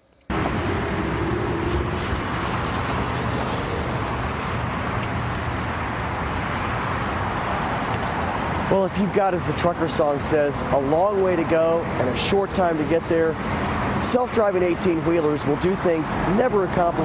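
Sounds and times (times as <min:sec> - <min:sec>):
cars passing on road: 0:00.2 - 0:17.0.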